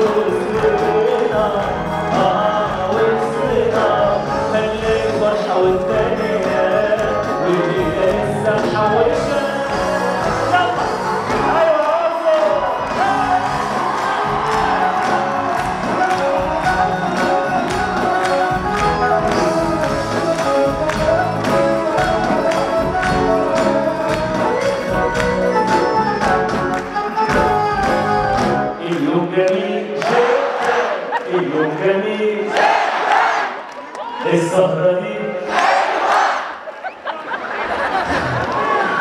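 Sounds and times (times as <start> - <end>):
man singing over live band: 0.0 - 32.6, 34.2 - 35.6
crowd noise: 0.0 - 39.0
hand-drum beat: 12.6 - 28.7.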